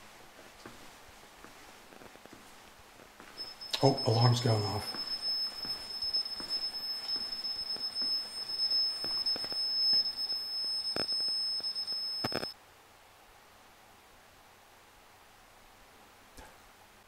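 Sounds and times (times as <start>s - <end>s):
high-pitched electronic alarm tone: 3.4s - 12.6s.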